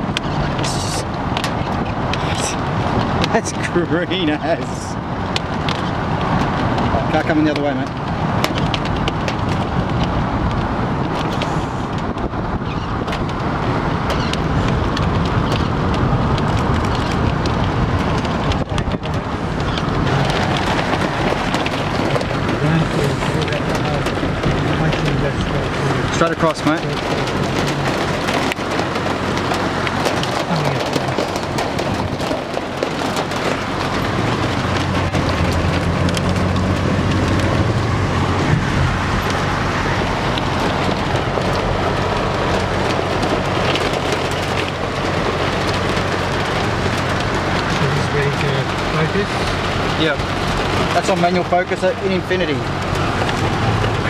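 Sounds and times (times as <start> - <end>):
car engine and road noise: 0.0 - 54.0
rain pattering on car: 0.0 - 54.0.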